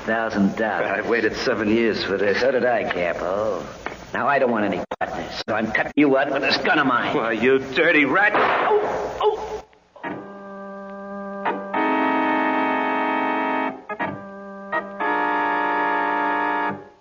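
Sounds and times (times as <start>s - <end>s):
held organ chords: 10.1s - 17.0s.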